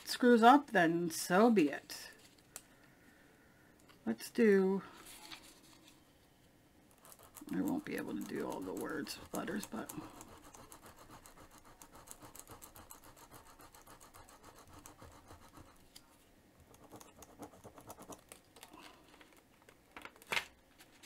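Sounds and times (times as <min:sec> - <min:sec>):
applicator scratching over stencil: 0:06.9 - 0:15.9, 0:16.7 - 0:18.4.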